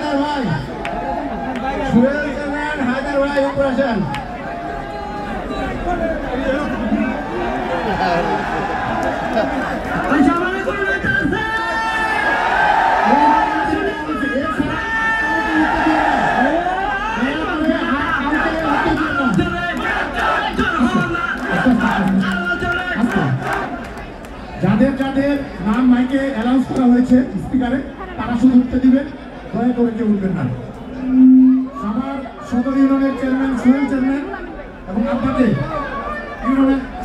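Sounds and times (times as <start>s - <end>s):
crowd shouting: 0.0s - 24.0s
loud drawn-out calls: 19.8s - 20.8s.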